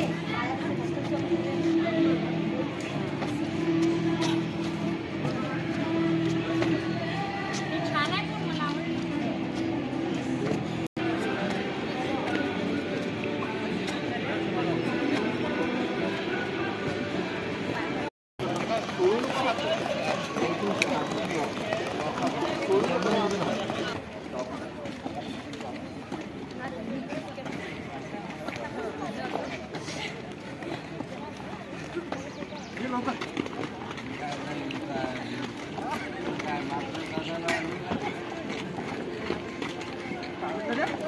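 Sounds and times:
people talking and calling outdoors: 0.0 - 41.0.

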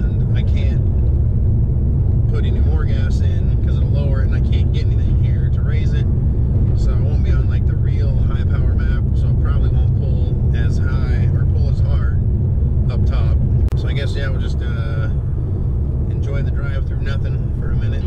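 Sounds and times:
man talking: 0.0 - 0.9, 2.3 - 6.1, 6.7 - 12.2, 12.9 - 15.2, 16.1 - 18.0
car cabin road and engine rumble: 0.0 - 18.0.

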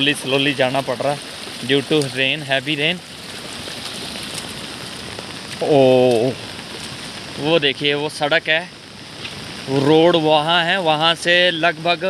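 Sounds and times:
heavy rain falling: 0.0 - 12.0.

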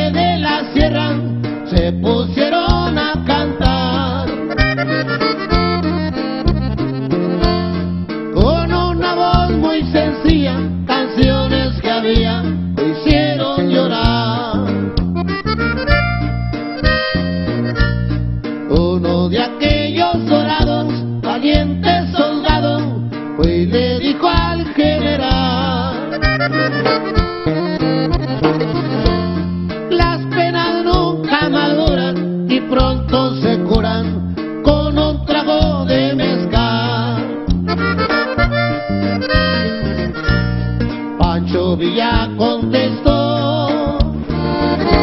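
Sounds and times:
person singing: 0.0 - 4.6, 8.4 - 14.7, 18.7 - 27.1, 29.9 - 37.4, 41.2 - 44.2
button accordion melody: 0.0 - 19.3, 24.3 - 32.8, 35.5 - 41.3, 44.0 - 45.0
low bass notes: 0.0 - 45.0
drum beat: 26.2 - 30.2.

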